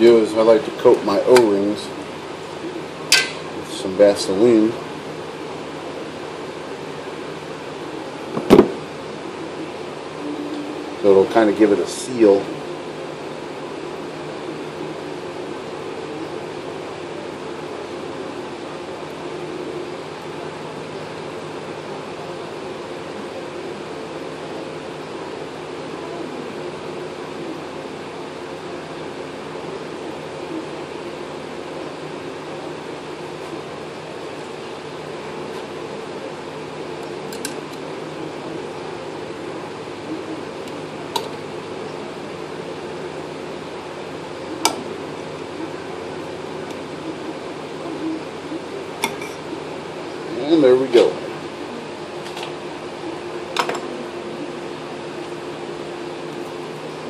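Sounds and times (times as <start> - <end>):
steady mechanical hum: 0.0 - 57.0.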